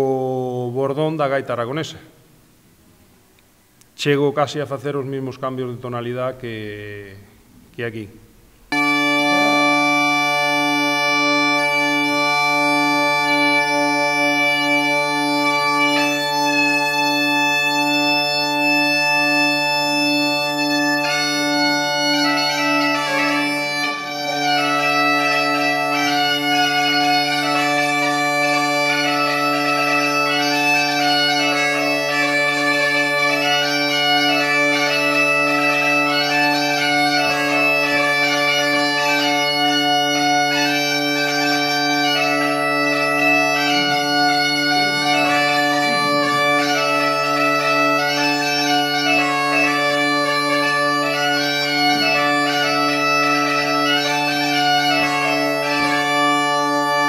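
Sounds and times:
bagpipe drone: 8.7s - 57.0s
bagpipe melody on chanter: 8.7s - 57.0s.

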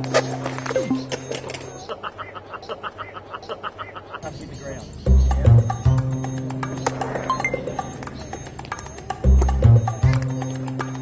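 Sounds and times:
background music: 0.0s - 1.8s, 5.0s - 11.0s
person laughing: 0.9s - 4.4s.

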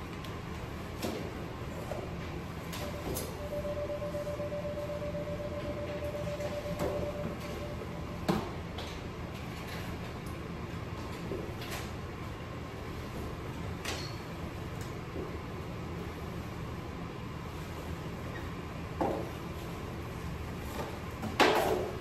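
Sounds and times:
operating room background hum: 0.0s - 22.0s
faint steady tone: 2.8s - 8.4s.

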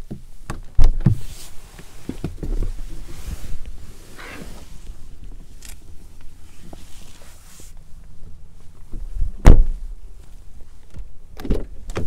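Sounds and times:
car door shutting thump: 9.4s - 9.8s.

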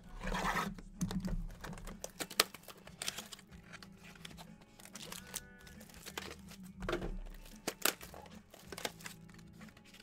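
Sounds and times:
cardboard card packs clicking: 1.0s - 10.0s.

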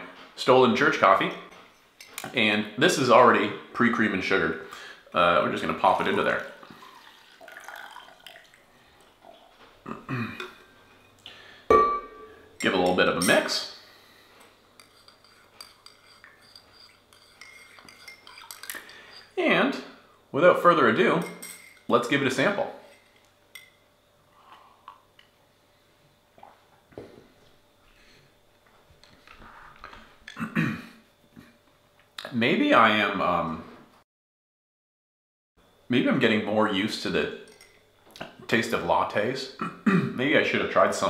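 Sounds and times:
coffee pouring into cup: 5.2s - 9.6s
throaty vocal sound: 9.8s - 10.6s
ceramic cup clink: 11.7s - 13.6s.

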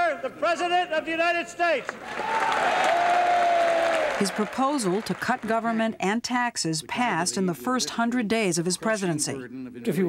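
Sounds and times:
crowd applauding: 1.8s - 5.8s.

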